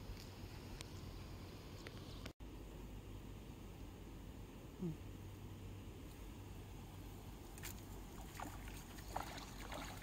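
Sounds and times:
fish splashing at water surface: 7.6s - 10.0s.

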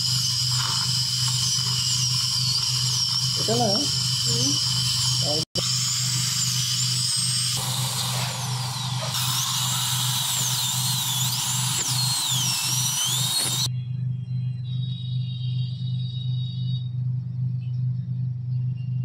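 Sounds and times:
dental drill high whine: 0.0s - 13.7s
steady low hum: 0.0s - 19.0s.

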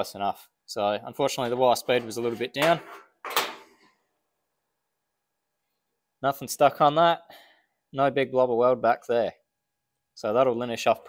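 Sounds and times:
metal piece knocking and scraping: 1.4s - 3.8s.

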